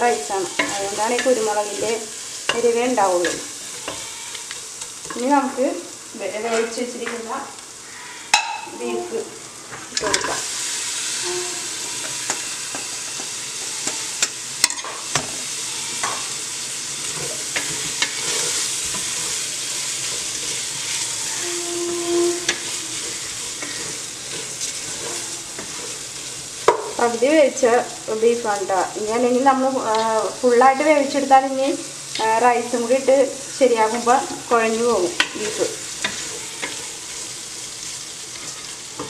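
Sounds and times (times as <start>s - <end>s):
food sizzling in a pot: 0.0s - 39.0s.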